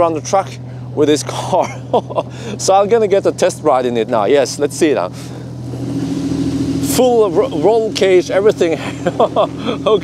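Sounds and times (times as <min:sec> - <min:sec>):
race car engine idling: 0:00.0 - 0:10.0.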